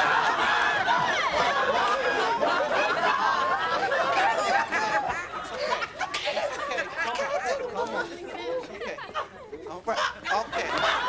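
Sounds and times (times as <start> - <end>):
voices exclaiming and crying out: 0.0 - 11.0.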